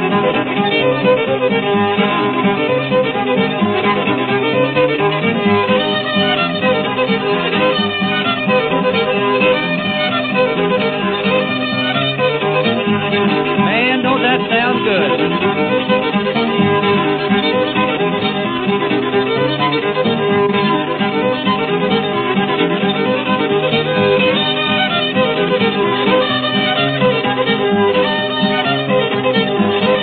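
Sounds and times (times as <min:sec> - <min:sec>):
fiddle tune: 0:00.0 - 0:30.0.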